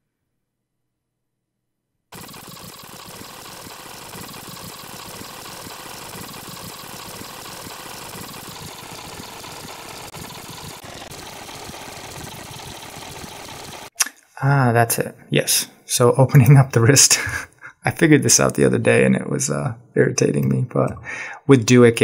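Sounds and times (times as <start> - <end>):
machine-like whirring: 2.1 - 13.9.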